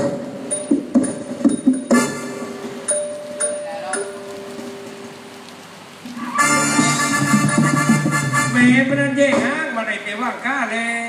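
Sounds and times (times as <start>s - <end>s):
loud live music: 6.1s - 9.7s.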